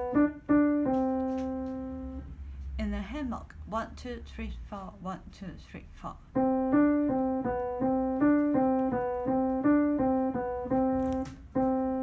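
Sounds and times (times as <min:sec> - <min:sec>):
piano playing simple tune: 0:00.0 - 0:02.4, 0:06.2 - 0:12.0.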